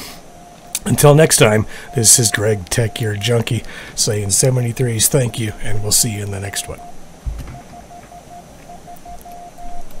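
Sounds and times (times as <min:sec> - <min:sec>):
morse code tone: 0:00.3 - 0:09.9.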